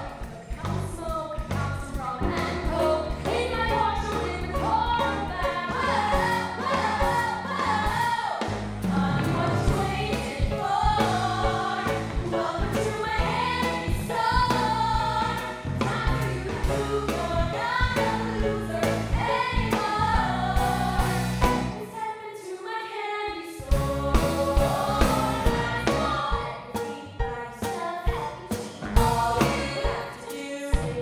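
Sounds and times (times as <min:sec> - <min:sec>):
instrumental accompaniment with beat: 0:00.0 - 0:22.0, 0:23.7 - 0:31.0
women singing together: 0:00.0 - 0:31.0.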